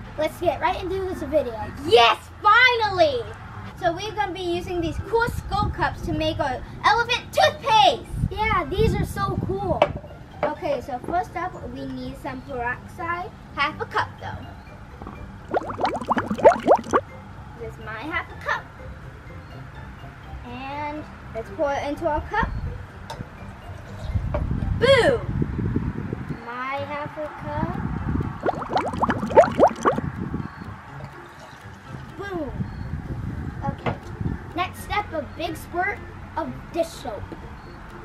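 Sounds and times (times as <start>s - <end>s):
liquid glugging from a bottle: 15.0s - 17.0s, 28.4s - 30.0s.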